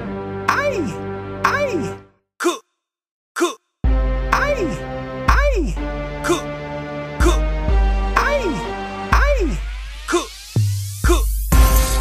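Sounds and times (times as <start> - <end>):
shouted vocal samples: 0.5 - 2.6, 3.4 - 3.6, 4.3 - 6.5, 8.2 - 10.4, 11.0 - 11.3
deep bass: 7.2 - 12.0
trap beat: 8.1 - 12.0.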